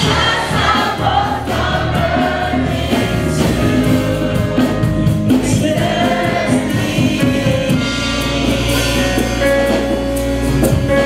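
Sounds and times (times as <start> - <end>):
gospel choir singing: 0.0 - 10.1.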